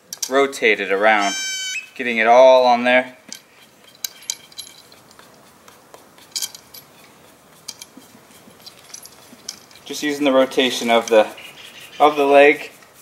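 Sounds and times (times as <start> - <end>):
brush painting wood: 0.3 - 1.3, 1.9 - 13.0.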